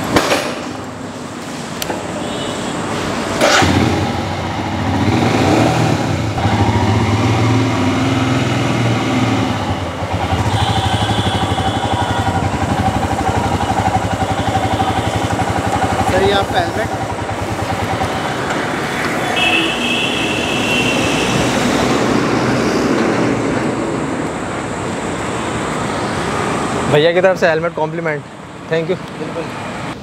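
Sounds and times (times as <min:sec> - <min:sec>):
motorcycle engine starting and running: 0:03.3 - 0:19.2.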